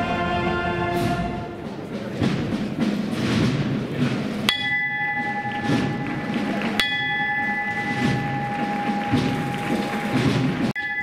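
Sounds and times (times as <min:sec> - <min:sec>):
bell ringing: 0:04.5 - 0:11.0.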